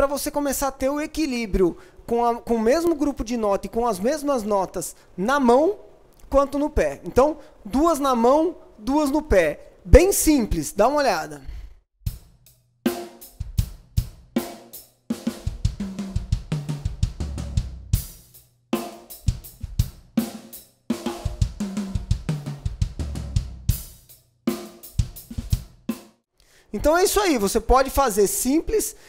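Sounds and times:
drum fills on toms and snare: 12.1 - 26.2
bass drum kicks: 15.5 - 18.1, 21.3 - 23.8.

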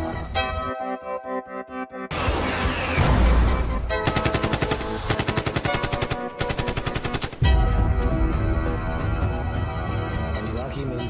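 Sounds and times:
background music: 0.0 - 11.0
automatic gunfire: 4.0 - 7.5.

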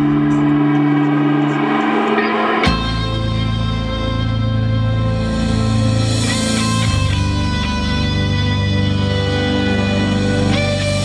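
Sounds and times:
live band holding a chord: 0.0 - 11.0.

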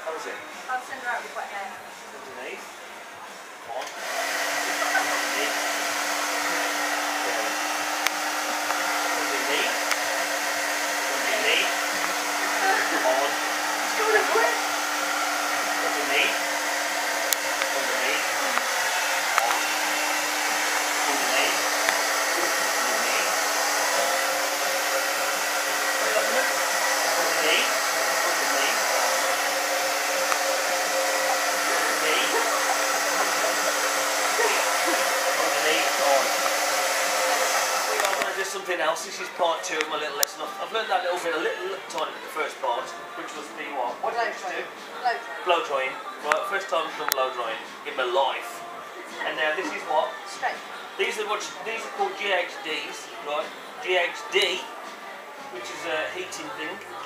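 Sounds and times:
hair dryer running: 3.8 - 38.6.

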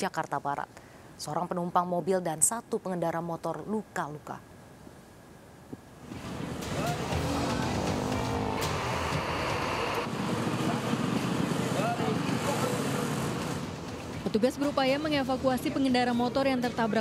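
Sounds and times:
traffic and vehicle engines: 6.0 - 17.0
people's voices: 6.6 - 13.6.

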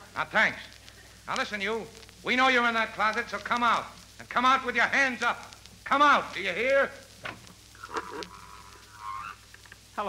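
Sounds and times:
door creaking squeak: 7.2 - 9.4.

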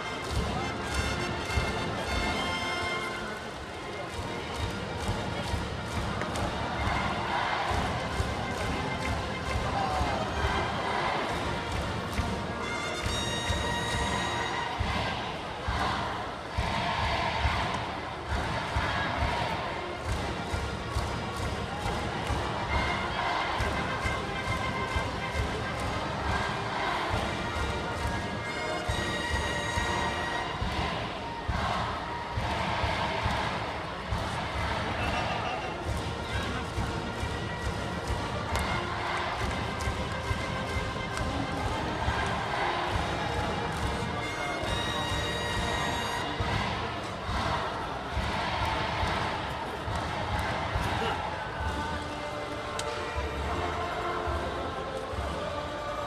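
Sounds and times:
brass band playing: 0.0 - 17.6, 22.2 - 33.5, 34.1 - 49.3
crowd chanting: 5.0 - 56.0.

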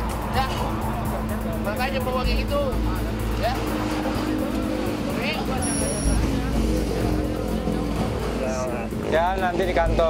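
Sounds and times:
background music with deep bass: 0.0 - 10.0
road traffic noise: 0.0 - 10.0.

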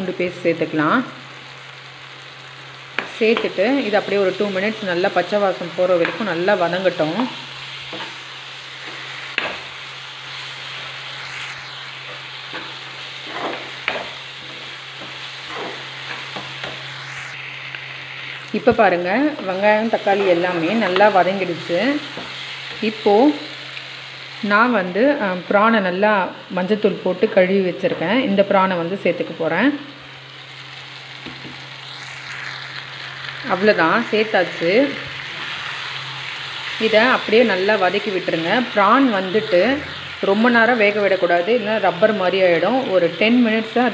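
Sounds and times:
vegetables sizzling in oil: 0.0 - 43.9
spatula scraping pan: 7.3 - 9.7, 10.6 - 17.1.

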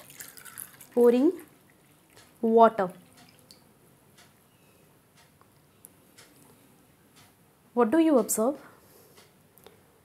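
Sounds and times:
water dripping into glass: 0.0 - 3.6.

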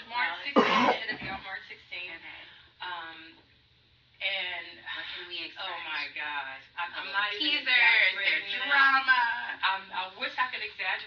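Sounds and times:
woman speaking: 0.0 - 3.4, 4.2 - 11.0
woman coughing: 0.5 - 1.4.

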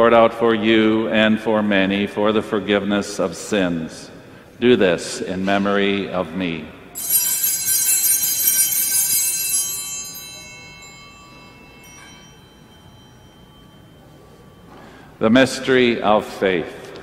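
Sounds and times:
altar bell ringing: 7.0 - 16.4.

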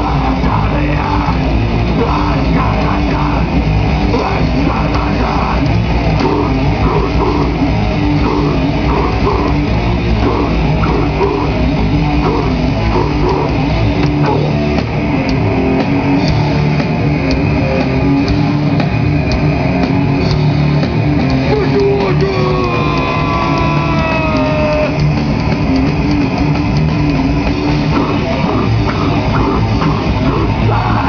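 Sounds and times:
bass guitar: 0.0 - 31.0
distorted electric guitar: 0.0 - 31.0
drum kit: 0.0 - 31.0.

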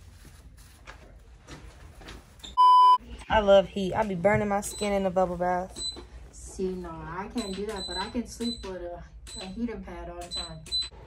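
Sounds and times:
loud electronic beep: 2.6 - 3.0.

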